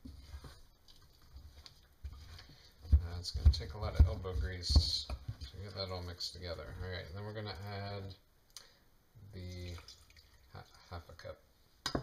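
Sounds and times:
soft handling: 0.0 - 8.1.

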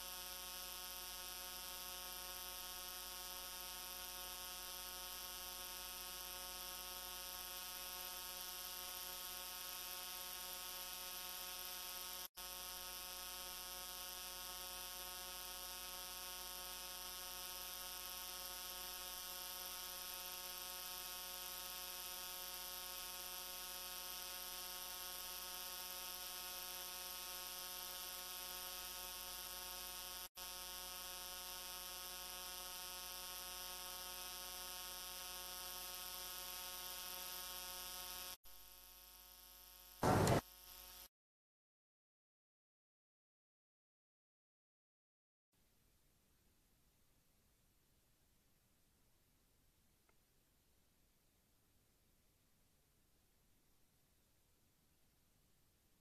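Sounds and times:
electrical hum and buzz: 0.0 - 41.1.

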